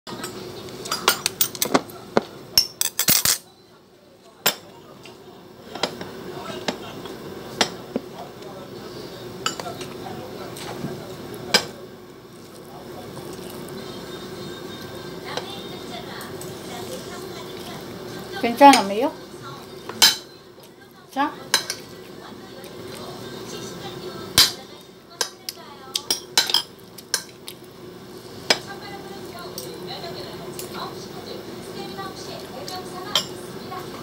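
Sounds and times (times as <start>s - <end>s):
tableware clinking on china plate: 2.6s - 3.4s.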